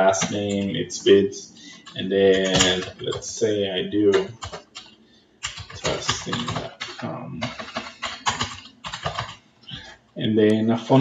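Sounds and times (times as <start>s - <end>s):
computer keyboard typing: 0.0s - 9.8s.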